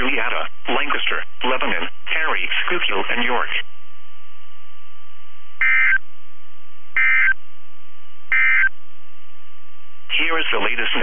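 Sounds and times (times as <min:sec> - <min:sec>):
buzzy digital tone bursts: 0:07.0 - 0:07.4.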